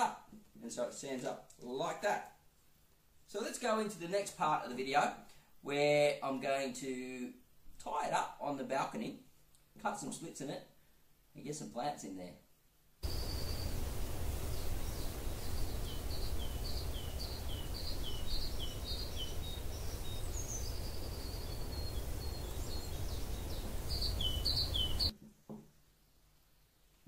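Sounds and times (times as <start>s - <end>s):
low rumble and hiss: 10.0s - 25.1s
small bird chirping and trilling: 13.0s - 25.1s.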